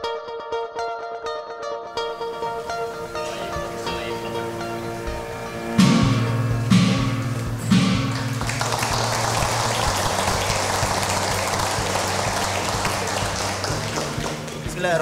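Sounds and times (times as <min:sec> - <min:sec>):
people applauding: 0:02.5 - 0:05.0, 0:06.9 - 0:15.0
gong struck and ringing: 0:04.8 - 0:08.9.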